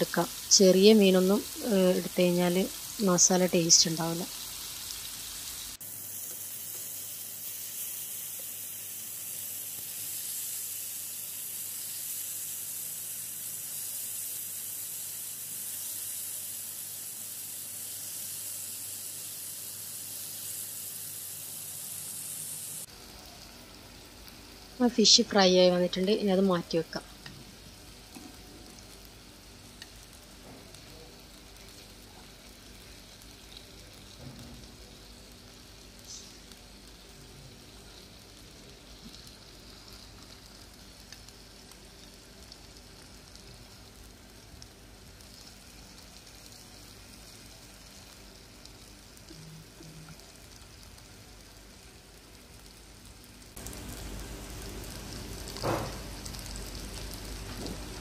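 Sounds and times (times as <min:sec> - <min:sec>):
fish sizzling in hot oil: 0:00.0 - 0:58.0.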